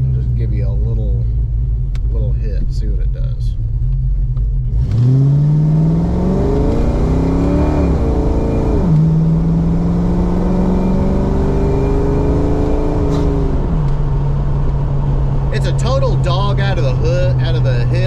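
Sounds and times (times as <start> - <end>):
car engine accelerating hard: 3.9 - 18.0.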